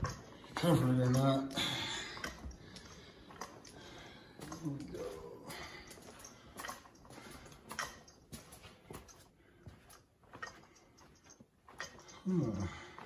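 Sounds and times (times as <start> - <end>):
footsteps on tile floor: 0.0 - 13.0.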